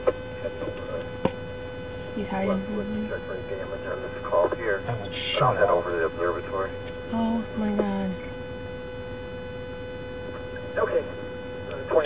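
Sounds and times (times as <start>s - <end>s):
electrical hum: 0.0s - 12.0s
mid-pitched whine: 0.0s - 12.0s.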